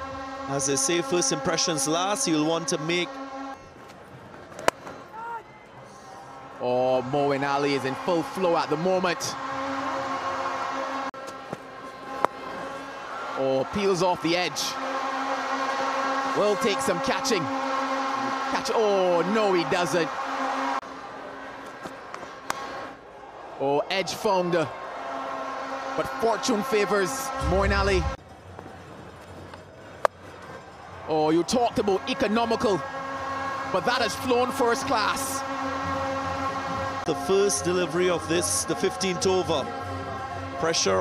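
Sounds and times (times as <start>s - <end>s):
stadium crowd: 0.0s - 41.0s.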